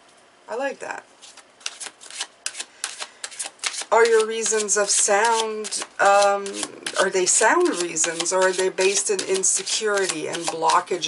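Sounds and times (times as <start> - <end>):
cards being shuffled: 1.2 - 10.8.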